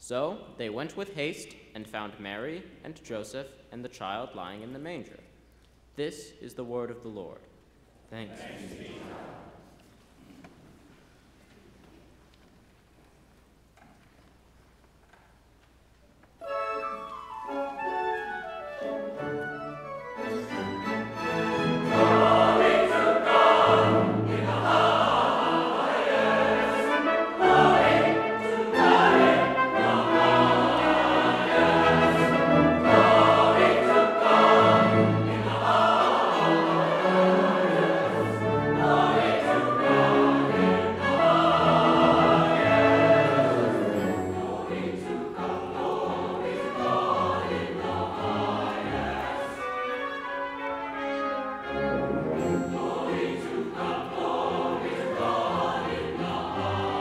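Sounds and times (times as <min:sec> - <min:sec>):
church choir singing: 0:08.2 - 0:09.8, 0:16.8 - 0:57.0
orchestra of strings and brass: 0:16.4 - 0:57.0.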